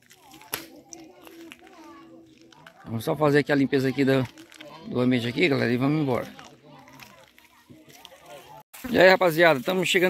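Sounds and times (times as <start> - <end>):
faint distant voices talking: 0.0 - 8.6.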